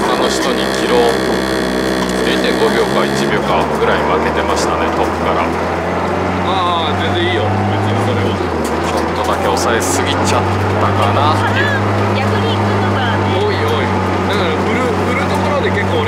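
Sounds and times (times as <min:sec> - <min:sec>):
car engine running inside cabin: 0:00.0 - 0:16.0.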